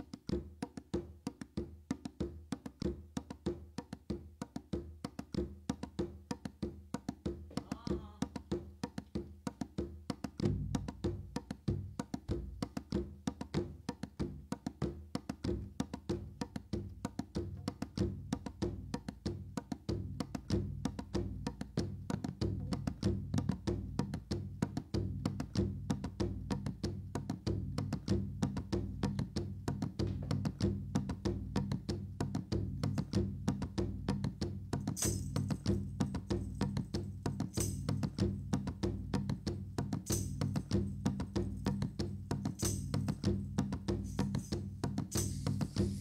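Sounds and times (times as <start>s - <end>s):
clicking wood block rhythm: 0.0s - 46.0s
frame drum low beats: 22.4s - 46.0s.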